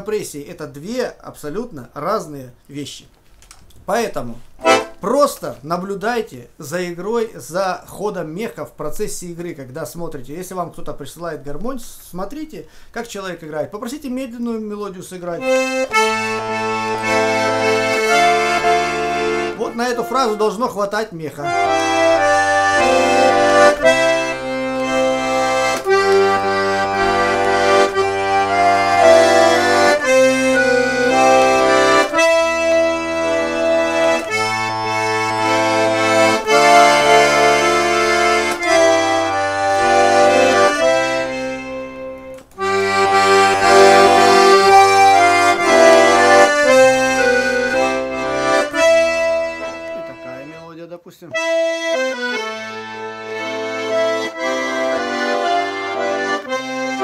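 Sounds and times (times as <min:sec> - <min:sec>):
button accordion slow melody: 0:04.5 - 0:05.1, 0:15.2 - 0:57.0.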